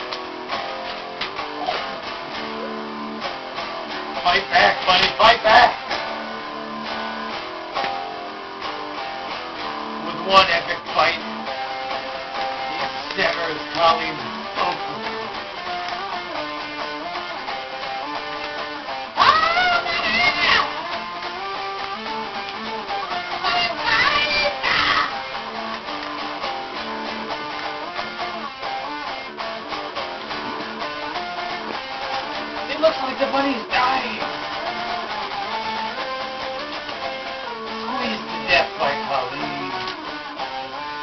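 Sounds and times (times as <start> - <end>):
guitar chord ringing: 0.0 - 41.0.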